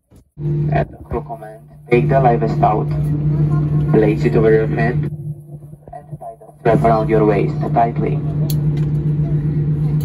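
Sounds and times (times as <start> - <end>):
airliner cabin hum and rumble: 0.0 - 10.0.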